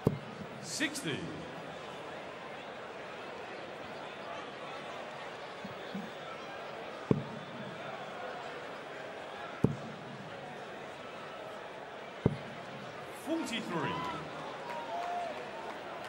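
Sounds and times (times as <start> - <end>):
murmur of arena crowd: 0.0 - 16.0.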